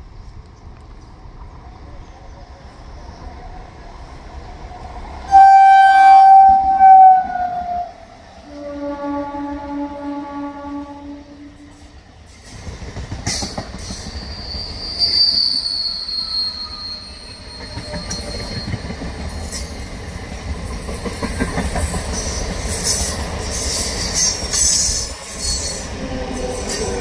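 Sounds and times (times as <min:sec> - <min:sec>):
train horn: 0:05.3 - 0:11.9
train wheels rumbling and clattering: 0:11.6 - 0:15.9, 0:17.0 - 0:27.0.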